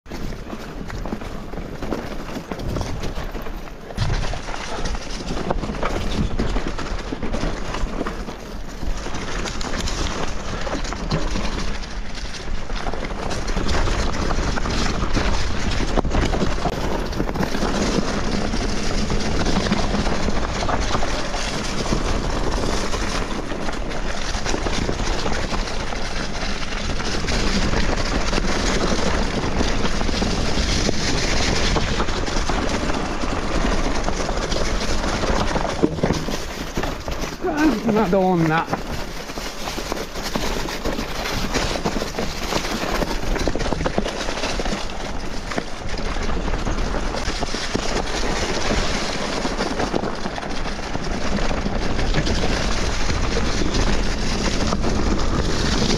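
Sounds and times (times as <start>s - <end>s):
bike rattling: 0.1s - 55.9s
bike tyres crunching leaves: 0.1s - 55.9s.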